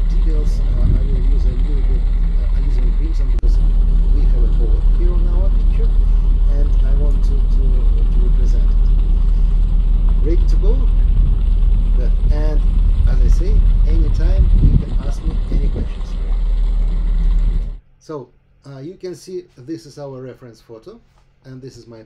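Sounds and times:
people talking: 0.0s - 9.4s, 10.2s - 11.0s, 11.9s - 16.4s, 18.0s - 22.0s
boat engine rumbling: 0.0s - 17.8s.

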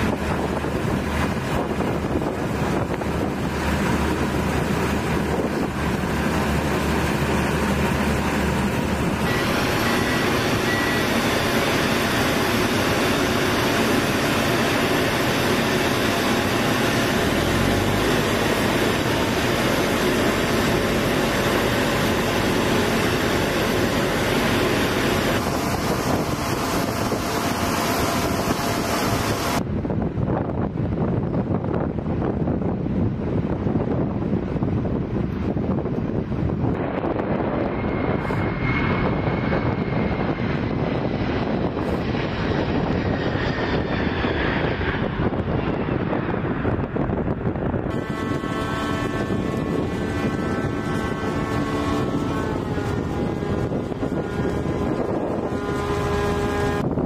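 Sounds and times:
ground vehicle engines: 0.0s - 29.7s, 32.8s - 57.0s
jet engines roaring: 0.0s - 57.0s
wind on microphone: 0.0s - 57.0s.

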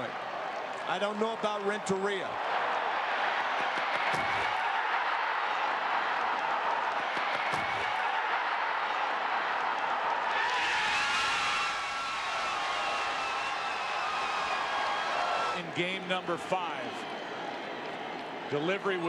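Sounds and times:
stadium crowd noise: 0.0s - 19.0s.

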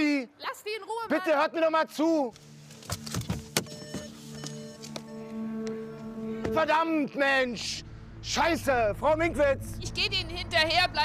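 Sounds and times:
music underscore: 2.4s - 11.0s.

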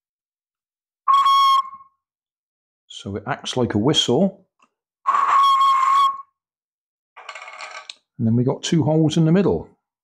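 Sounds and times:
high whistle: 1.0s - 2.0s, 5.1s - 6.4s.

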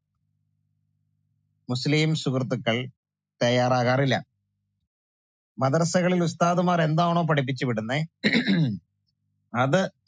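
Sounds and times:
man speaking: 1.7s - 4.3s, 5.6s - 8.7s, 9.6s - 10.0s.

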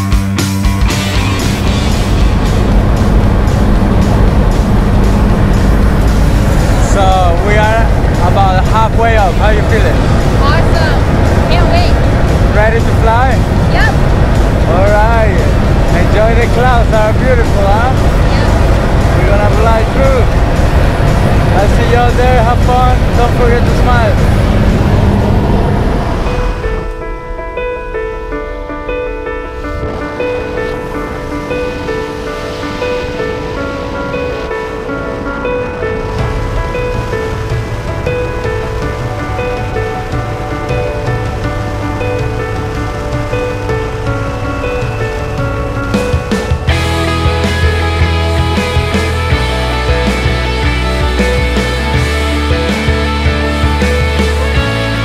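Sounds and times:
rock music: 0.0s - 55.0s
low hum: 0.7s - 55.0s
plane engines inside cabin: 0.9s - 27.7s, 29.2s - 47.5s
voices: 6.8s - 14.0s, 14.7s - 20.4s.

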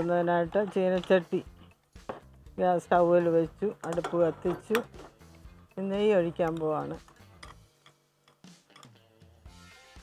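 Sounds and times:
woman talking: 0.0s - 1.5s, 2.6s - 5.0s, 5.7s - 7.0s.

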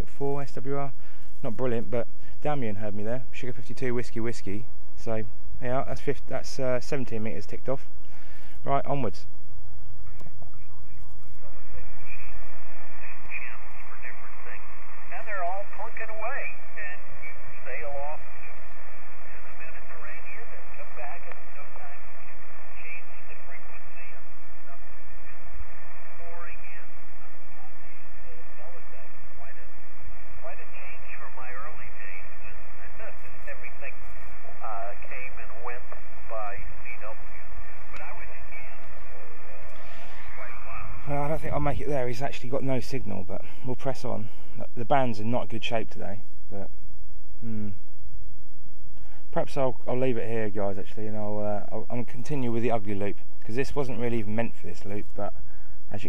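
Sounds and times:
radio band noise hiss: 0.0s - 46.8s, 47.4s - 47.8s, 49.0s - 56.0s
garbled radio voices: 10.5s - 43.5s.

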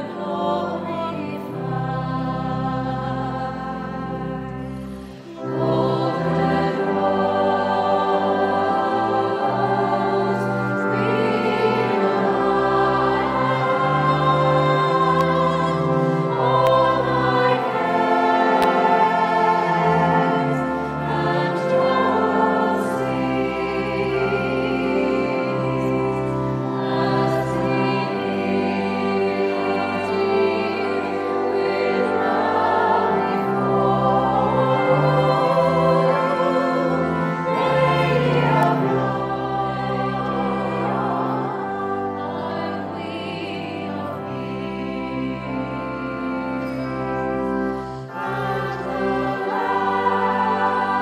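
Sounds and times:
choir singing slow liturgical music: 0.0s - 51.0s
sustained accompaniment: 0.0s - 51.0s.

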